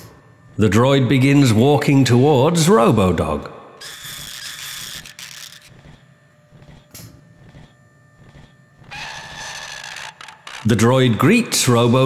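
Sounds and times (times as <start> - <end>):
low steady hum: 0.0 - 12.0
robot servo whirring: 3.8 - 6.0, 6.6 - 10.7.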